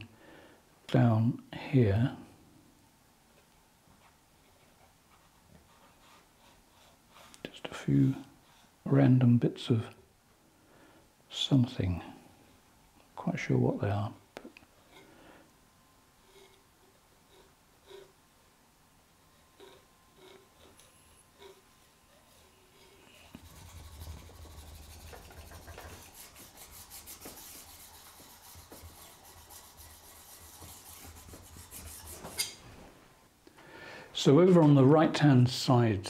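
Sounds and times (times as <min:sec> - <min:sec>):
palette knife scraping paint: 0:16.2 - 0:18.2, 0:19.3 - 0:32.6.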